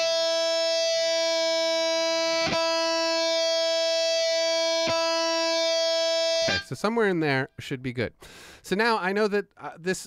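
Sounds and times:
distorted electric guitar note: 0:00.0 - 0:06.8.

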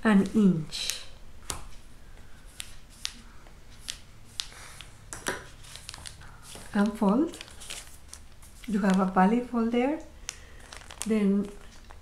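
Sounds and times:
sharp ticks and crackles of paper: 0:02.5 - 0:04.9, 0:05.6 - 0:09.2, 0:10.2 - 0:12.0
paper being creased: 0:05.6 - 0:09.1.

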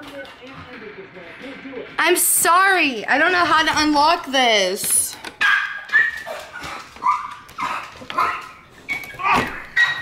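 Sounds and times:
dog yipping: 0:05.4 - 0:10.0.

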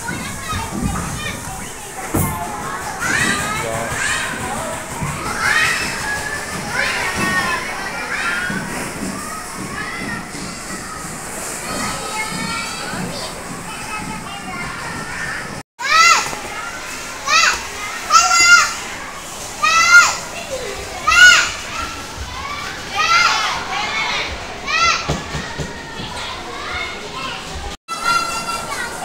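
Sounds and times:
children chattering: 0:00.0 - 0:29.0
children shrieking and squealing: 0:00.0 - 0:29.0.

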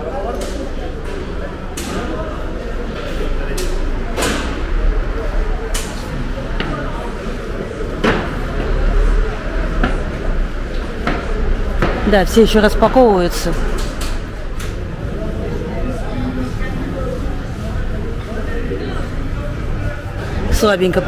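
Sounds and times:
voices of vendors and shoppers: 0:00.0 - 0:21.0.

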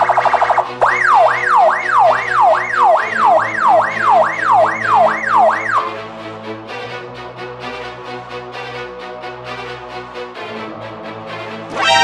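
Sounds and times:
police siren yelping: 0:00.0 - 0:06.1, 0:11.7 - 0:12.0
background music: 0:00.0 - 0:12.0.

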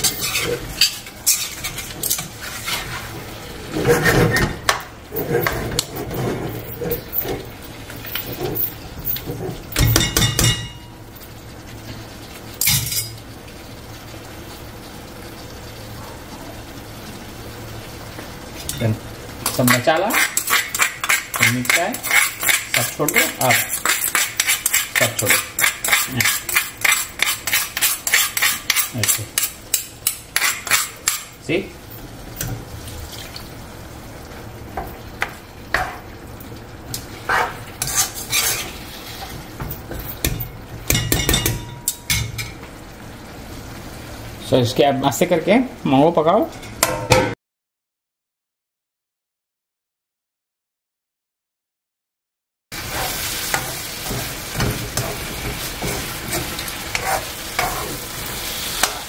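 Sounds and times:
metal ladle scraping a wok: 0:00.0 - 0:03.1, 0:19.7 - 0:29.6, 0:37.3 - 0:39.4, 0:52.9 - 0:59.0
curry sizzling: 0:00.0 - 0:47.2, 0:52.7 - 0:59.0.

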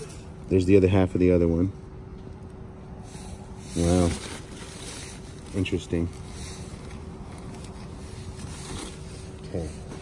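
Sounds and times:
paper wrapping rustling: 0:03.7 - 0:10.0.

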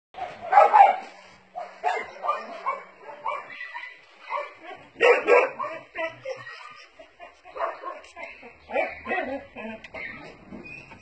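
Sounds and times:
dogs barking: 0:00.2 - 0:10.2.

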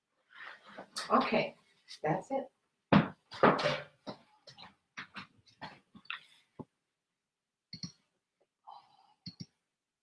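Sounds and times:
footsteps on wooden floor: 0:02.9 - 0:05.8.

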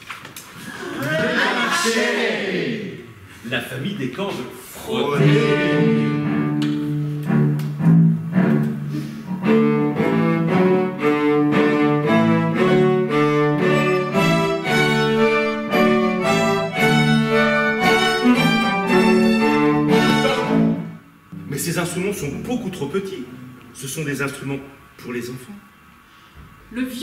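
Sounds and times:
bowed string ensemble: 0:05.0 - 0:21.1.

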